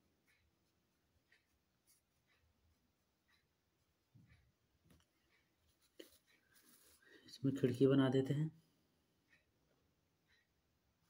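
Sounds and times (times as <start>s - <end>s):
pencil scratching on paper: 0.2s - 4.1s, 5.4s - 7.2s.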